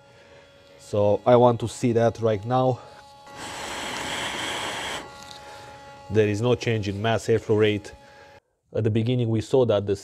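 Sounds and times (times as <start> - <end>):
person blowing a long breath: 2.9 - 5.8.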